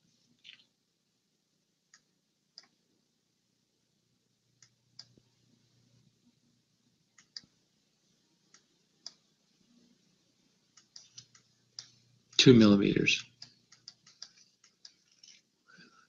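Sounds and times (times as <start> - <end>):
mouse and keyboard clicks: 7.2 - 7.5, 10.7 - 12.0, 13.2 - 15.4.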